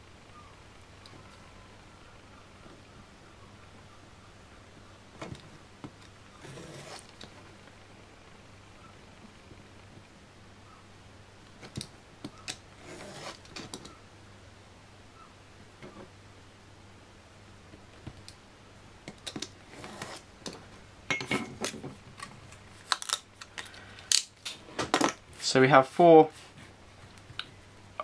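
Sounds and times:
knife scraping along ruler: 6.4s - 7.1s, 12.8s - 13.5s, 19.7s - 20.2s.

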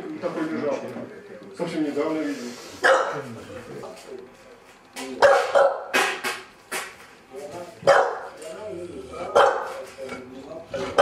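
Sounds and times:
dog barking: 2.8s - 3.2s, 5.2s - 6.0s, 7.8s - 8.4s, 9.3s - 9.8s.

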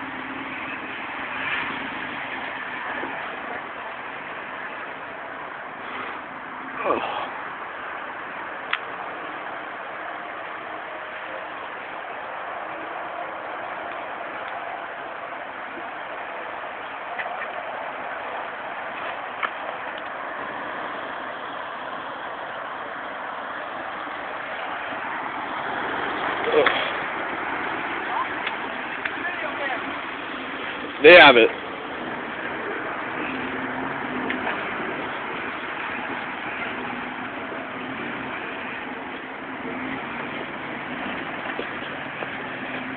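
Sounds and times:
vehicle engine at low revs: 0.0s - 42.9s.

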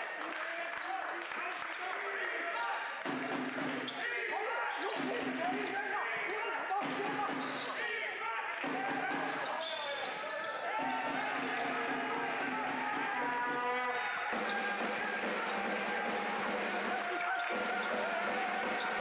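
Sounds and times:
voices in a hall: 0.0s - 19.0s.

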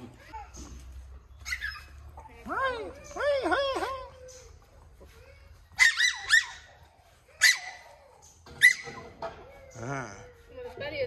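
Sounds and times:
puppy yapping: 5.8s - 6.8s, 7.4s - 9.1s.

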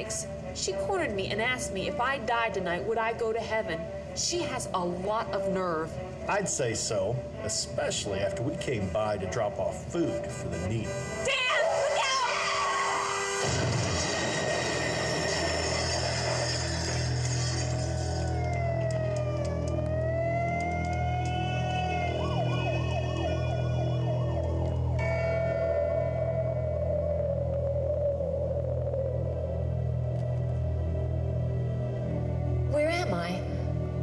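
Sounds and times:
low musical drone: 0.0s - 34.0s
siren wailing: 11.0s - 32.7s.

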